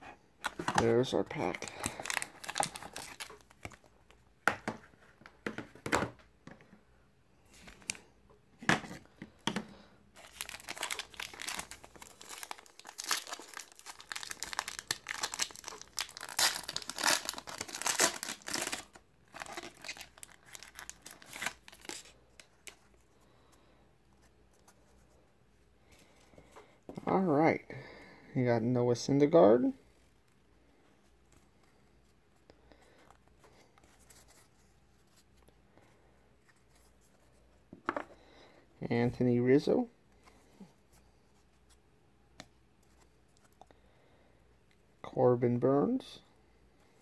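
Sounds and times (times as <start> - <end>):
foil wrapper crinkling and tearing: 1.6 - 3.7, 10.2 - 22.8.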